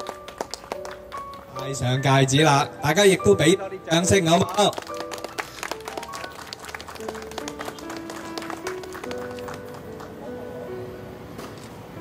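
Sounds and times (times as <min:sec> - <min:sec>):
people clapping: 0:00.0 - 0:01.6, 0:04.4 - 0:10.3
soft background music: 0:00.0 - 0:12.0.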